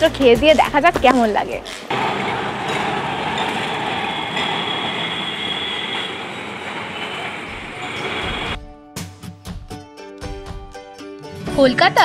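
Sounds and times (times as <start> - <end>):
high wheel squeal: 1.9 - 8.6
tram wheels rumbling on rails: 1.9 - 8.6.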